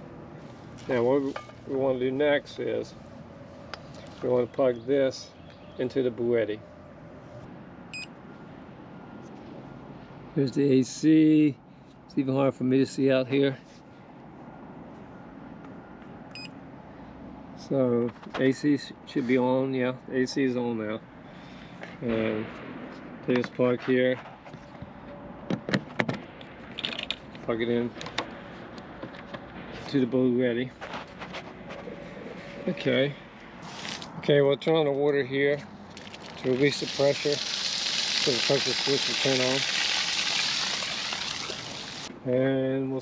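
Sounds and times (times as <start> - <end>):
faint outdoor background noise: 0.0 - 43.0.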